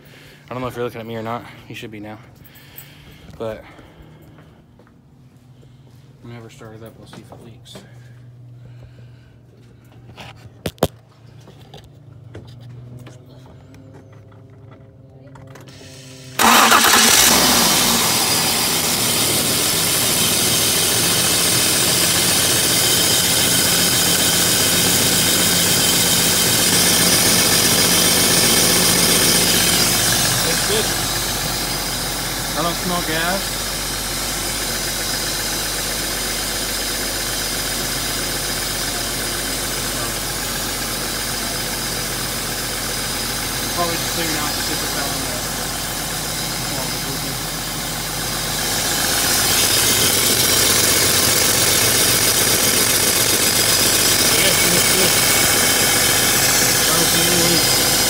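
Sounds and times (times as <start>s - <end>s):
car engine starting and idling: 6.4s - 58.0s.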